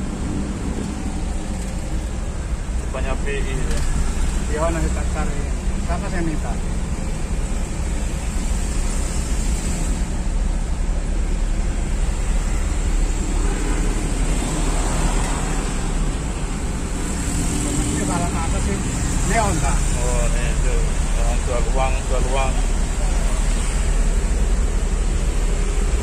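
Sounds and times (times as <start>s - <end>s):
engine and road rumble: 0.0s - 26.0s.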